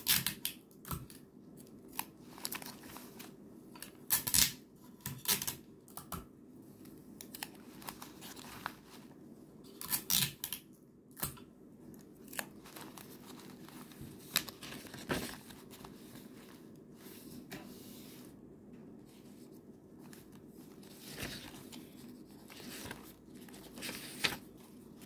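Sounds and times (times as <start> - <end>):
paper tearing and crinkling: 20.8 - 25.0.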